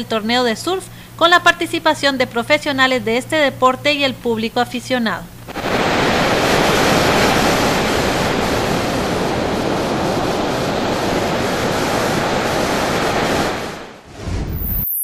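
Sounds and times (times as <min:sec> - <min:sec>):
waves breaking on beach: 0:05.5 - 0:14.0.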